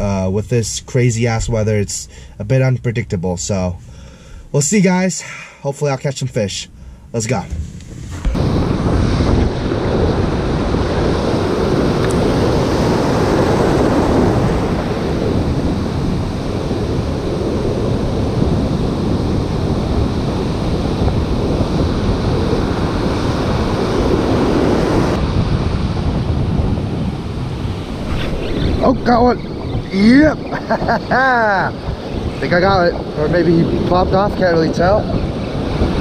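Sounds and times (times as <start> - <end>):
wind buffeting microphone: 6.7 - 36.0
ocean surf breaking: 7.1 - 36.0.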